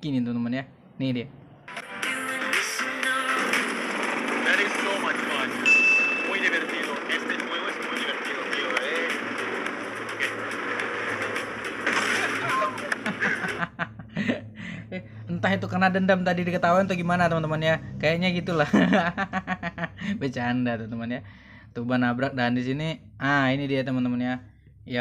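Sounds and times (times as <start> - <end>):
background music: 1.5 - 14.8.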